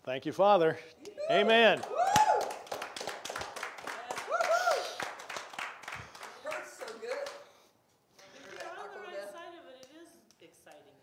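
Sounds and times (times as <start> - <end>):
small group clapping: 1.3 - 10.9.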